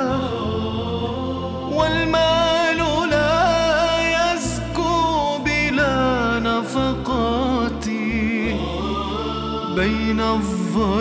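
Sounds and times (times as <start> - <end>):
low steady accompaniment: 0.0 - 11.0
person singing a religious song: 0.0 - 11.0.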